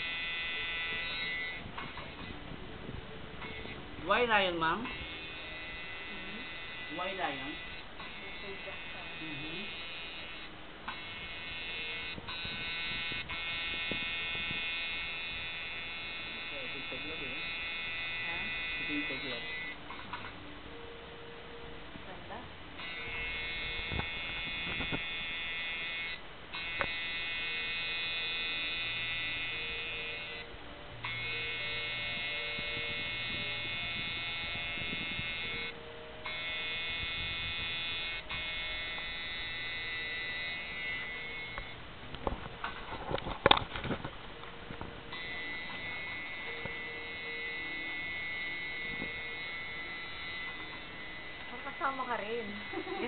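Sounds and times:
tattoo machine buzzing: 0.0 - 2.6, 3.3 - 20.3, 22.8 - 53.0.

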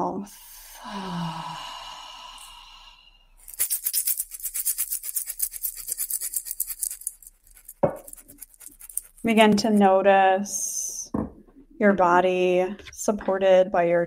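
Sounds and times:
breath out through mouth: 0.3 - 3.4
fast rasping shake: 3.4 - 9.5.

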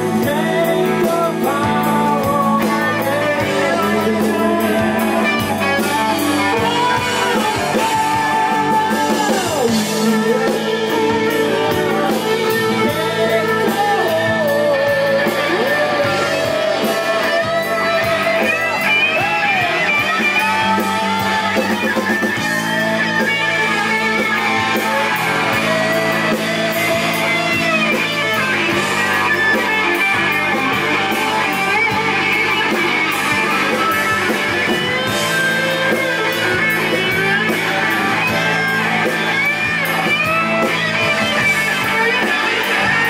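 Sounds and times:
bass: 0.0 - 43.0
drums with cymbals: 0.0 - 43.0
electric guitar lead: 0.0 - 43.0
keyboard: 0.0 - 43.0.

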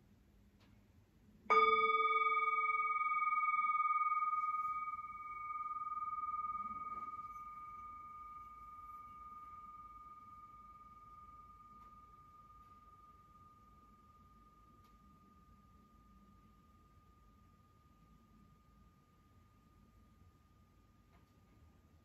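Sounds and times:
singing bowl ringing: 1.5 - 22.0.

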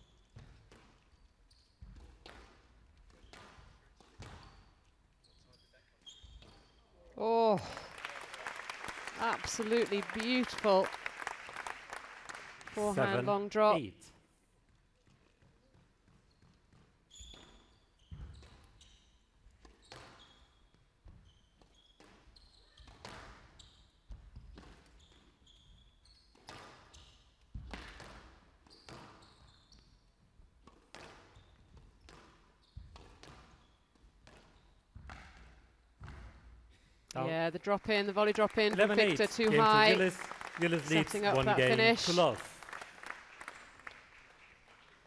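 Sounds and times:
shoes squeaking on floor: 0.0 - 7.0, 15.1 - 30.3, 30.9 - 35.6
squash ball hitting rackets and walls: 1.8 - 4.6, 26.3 - 29.2, 30.6 - 36.6.

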